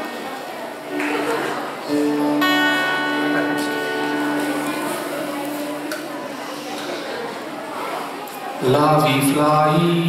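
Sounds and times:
acoustic guitar chord ringing: 0:00.9 - 0:06.6.

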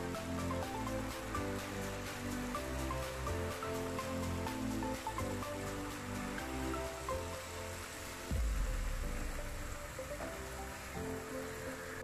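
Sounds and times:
background music: 0:00.0 - 0:12.0
low thump: 0:08.3 - 0:09.7.

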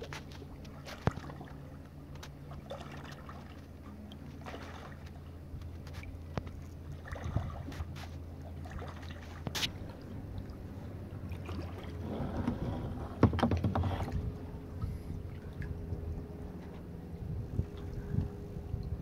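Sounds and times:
paddle splashes: 0:00.0 - 0:16.9
low steady rumble: 0:00.0 - 0:19.0
water lapping and dripping: 0:00.0 - 0:19.0
small knocks: 0:12.4 - 0:14.2.

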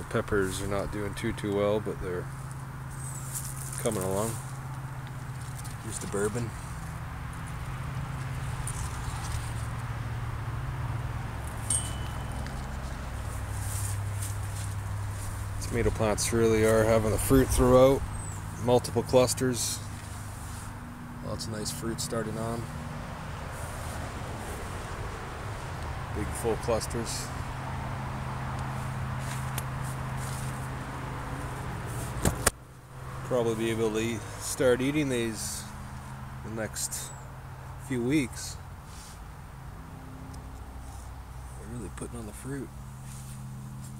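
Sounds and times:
leaves rustling against camera: 0:02.2 - 0:21.2, 0:21.8 - 0:39.4, 0:40.4 - 0:43.9.

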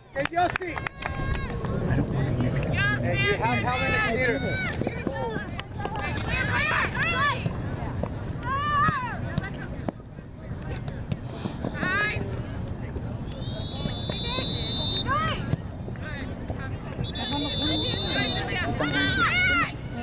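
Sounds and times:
background noise: 0:00.0 - 0:20.0.

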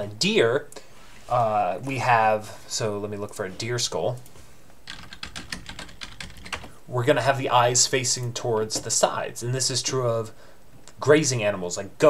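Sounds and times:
computer keyboard typing: 0:04.8 - 0:06.7.

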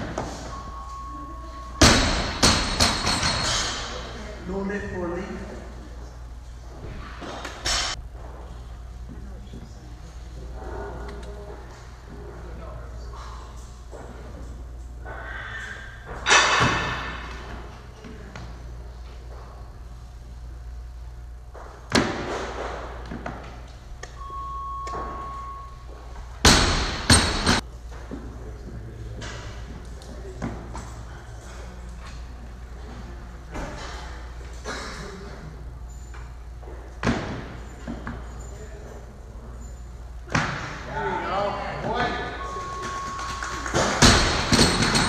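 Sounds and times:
steady electronic beep: 0:00.4 - 0:02.3, 0:24.2 - 0:25.8, 0:42.4 - 0:43.8
barbell dropped on platform: 0:16.2 - 0:17.4.

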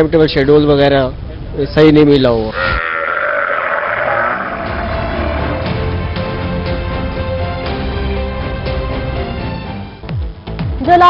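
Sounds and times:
camel bellowing gurgling roar: 0:02.5 - 0:05.8.

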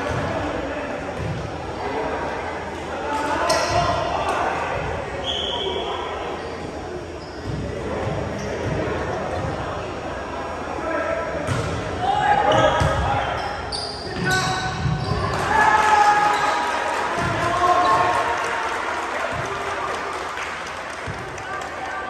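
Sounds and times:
players shouting: 0:14.1 - 0:20.1.

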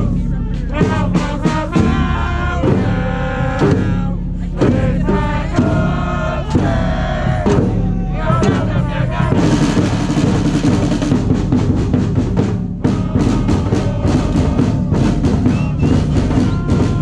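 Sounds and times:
bass drum rolling rhythm: 0:00.0 - 0:17.0.

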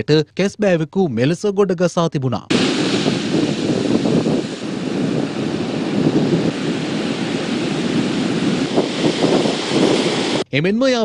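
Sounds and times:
ocean surf breaking on sand: 0:02.5 - 0:10.4
wind on microphone: 0:02.5 - 0:10.5.

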